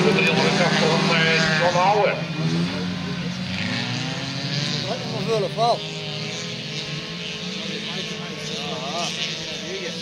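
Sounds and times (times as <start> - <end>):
racing car engines droning: 0.0 - 10.0.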